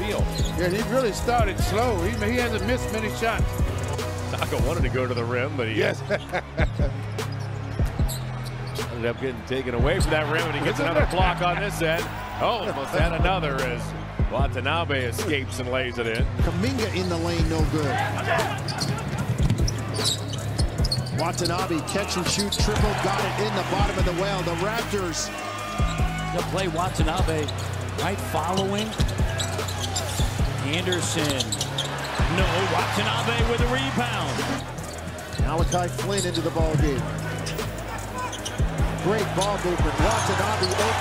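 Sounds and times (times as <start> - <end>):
arena crowd noise: 0.0 - 41.0
arena music: 0.0 - 41.0
sneaker squeaks: 0.1 - 0.8, 6.6 - 9.0, 18.4 - 21.7, 22.3 - 22.9, 28.4 - 32.3, 37.3 - 39.5, 40.1 - 41.0.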